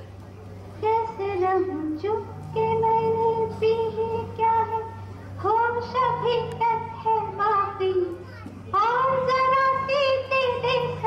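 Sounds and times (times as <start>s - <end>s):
steady low hum: 0.0s - 11.0s
woman singing in a high voice: 0.8s - 8.1s, 8.8s - 11.0s.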